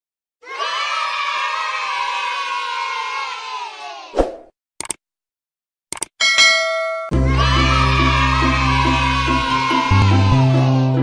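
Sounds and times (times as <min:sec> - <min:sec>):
children cheering: 0:00.4 - 0:04.1, 0:07.1 - 0:11.0.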